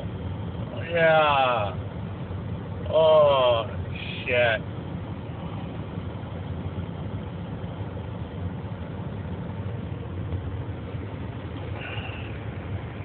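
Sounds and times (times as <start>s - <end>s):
diesel truck engine idling: 0.0s - 13.0s.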